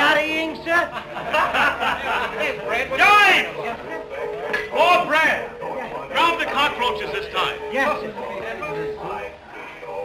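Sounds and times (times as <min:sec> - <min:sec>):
men speaking: 0:00.0 - 0:10.0
film music: 0:00.1 - 0:10.0.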